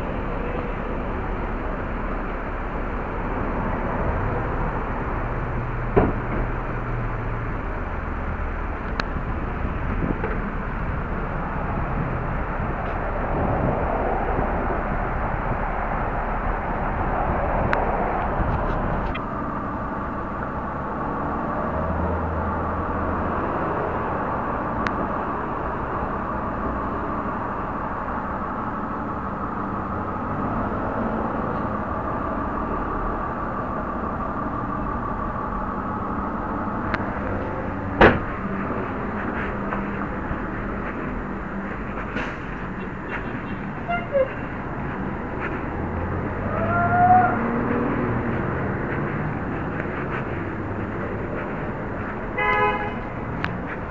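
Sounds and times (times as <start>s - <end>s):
city street traffic: 0.0s - 53.9s
sharp knock: 38.0s - 38.3s.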